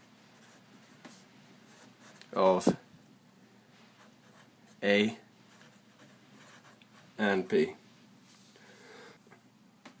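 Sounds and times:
marker scratching on paper: 0.0s - 2.2s, 5.5s - 7.1s.

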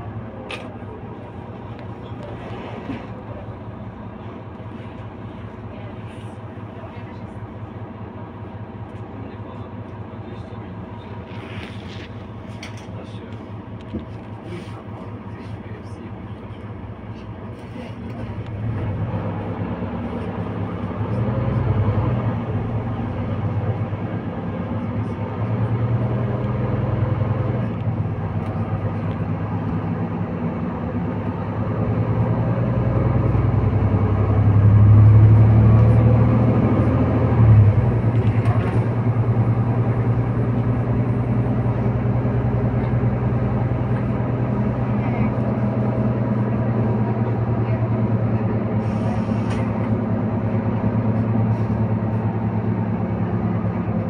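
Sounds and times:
bus diesel engine humming: 0.0s - 54.0s.

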